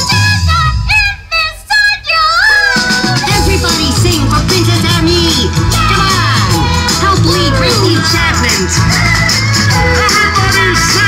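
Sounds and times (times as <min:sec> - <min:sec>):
high voice singing: 0:00.0 - 0:11.0
deep backing music: 0:02.5 - 0:11.0.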